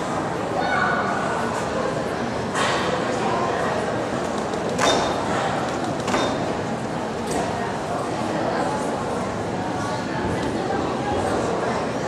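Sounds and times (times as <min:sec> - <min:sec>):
murmur of voices in a hall: 0:00.0 - 0:12.0.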